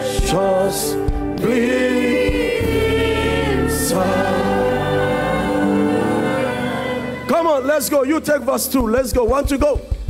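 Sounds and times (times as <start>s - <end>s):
choir singing gospel song: 0.0s - 8.7s
sustained instrumental backing: 0.0s - 10.0s.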